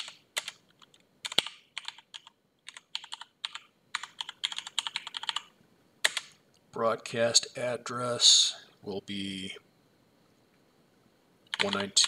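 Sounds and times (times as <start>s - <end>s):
computer keyboard typing: 0.0s - 6.4s, 11.5s - 12.0s.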